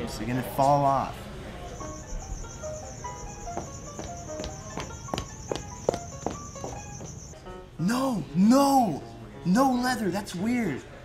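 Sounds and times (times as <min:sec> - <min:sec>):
background music: 0:00.0 - 0:11.0
footsteps on a hard floor: 0:03.4 - 0:07.3.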